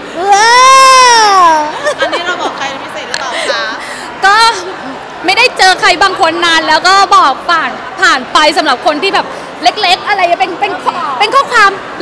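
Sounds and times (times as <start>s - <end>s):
woman's high drawn-out vocal: 0.2s - 1.8s.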